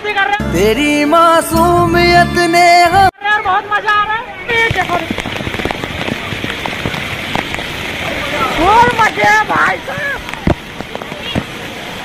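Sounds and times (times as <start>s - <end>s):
water pouring and splashing: 4.5s - 12.0s.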